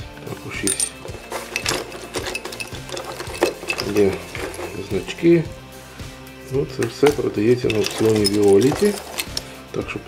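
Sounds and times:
metal watches clinking: 0.5 - 5.2, 6.8 - 9.7.

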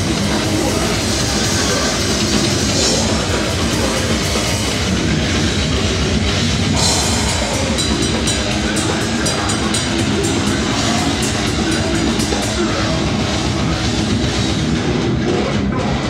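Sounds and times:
even cymbal hits: 0.0 - 12.8
distorted electric guitars: 0.0 - 16.0
drum kit: 0.0 - 16.0.

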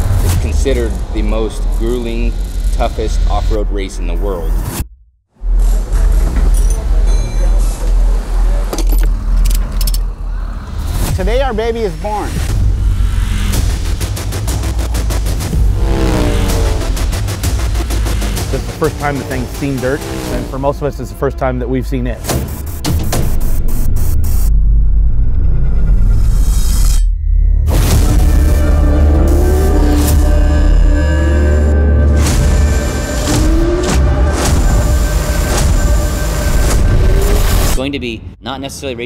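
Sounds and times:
deep bass pulse: 0.0 - 6.4, 10.6 - 21.6, 23.0 - 38.4
loud deep rumble: 12.3 - 20.7.

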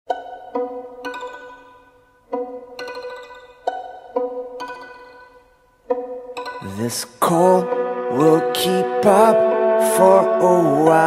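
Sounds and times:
plucked string instruments: 0.1 - 11.0.

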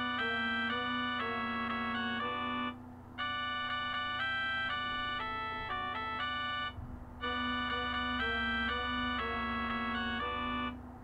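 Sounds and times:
organ-toned keyboard chords: 0.0 - 11.0.

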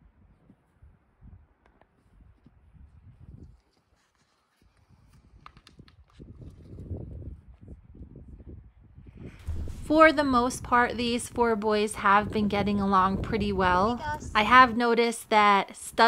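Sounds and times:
hooves on dirt: 9.4 - 10.2.

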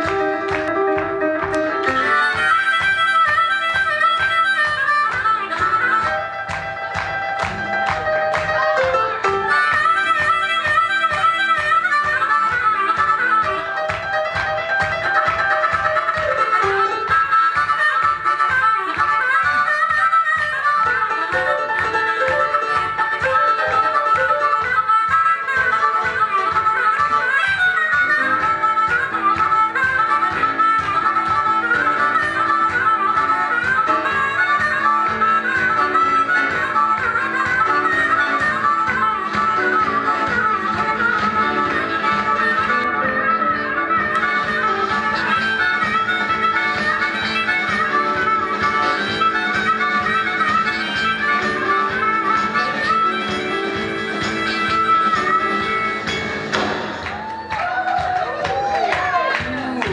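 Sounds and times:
amplified blues harmonica solo: 0.0 - 59.9
live band with fast beat: 0.0 - 59.9.

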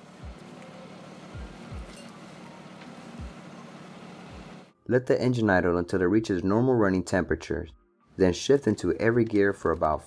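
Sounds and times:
car engine idling: 0.0 - 4.7.

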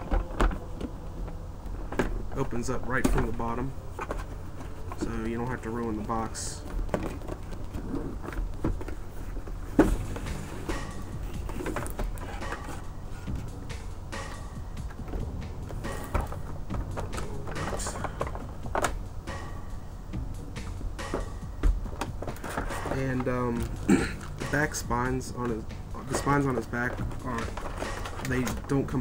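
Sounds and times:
packaging crinkling and scraping: 0.0 - 13.8, 21.1 - 29.0.

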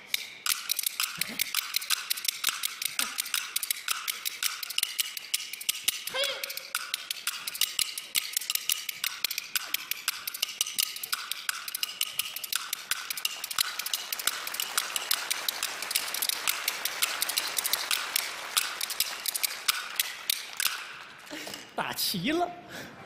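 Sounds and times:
bamboo clappers clattering: 0.0 - 21.8.

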